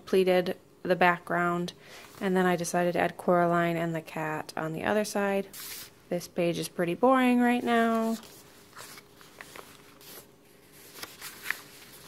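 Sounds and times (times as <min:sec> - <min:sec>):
paper rustling: 0:07.6 - 0:12.0
page turning ticks: 0:10.9 - 0:12.0.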